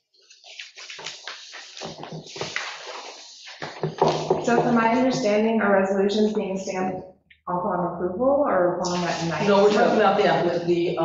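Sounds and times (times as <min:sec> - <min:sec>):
paper rustling and shuffling: 0:00.0 - 0:04.8, 0:08.9 - 0:10.6.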